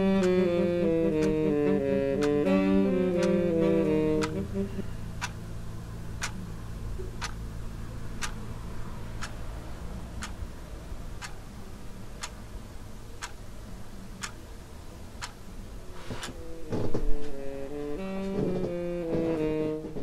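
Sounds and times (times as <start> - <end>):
clock ticking: 0.0 - 4.4, 5.2 - 5.5, 6.2 - 6.5, 7.1 - 7.4, 8.2 - 8.5, 9.1 - 9.4, 10.2 - 10.4, 11.2 - 11.5, 12.2 - 12.4, 13.2 - 13.4, 14.2 - 14.4, 15.2 - 15.4
low steady hum: 0.0 - 20.0.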